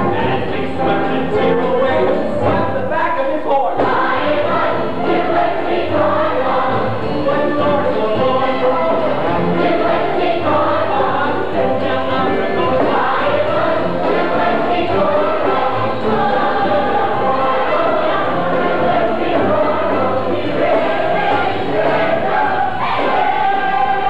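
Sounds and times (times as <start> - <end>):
chorus singing with accompaniment: 0.0 - 2.9, 3.7 - 24.0.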